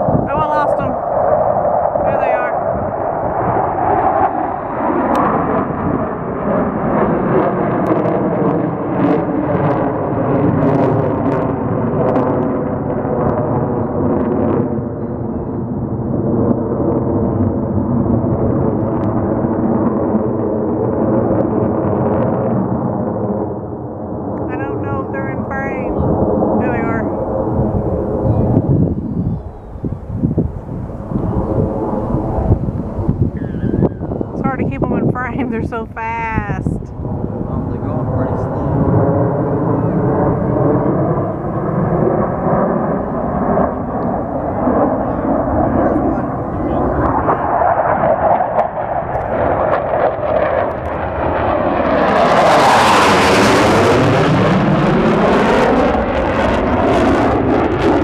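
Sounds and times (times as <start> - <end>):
jet engine roar: 0.0 - 58.0.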